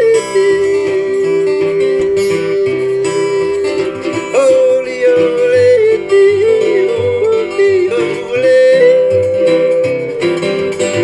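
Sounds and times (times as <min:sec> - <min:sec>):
man yodeling: 0:00.0 - 0:11.0
ukulele strumming: 0:00.0 - 0:11.0.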